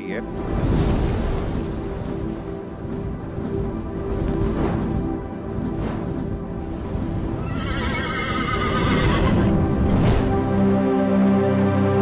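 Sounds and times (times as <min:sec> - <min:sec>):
dramatic music: 0:00.0 - 0:12.0
horse whinny: 0:07.4 - 0:09.5.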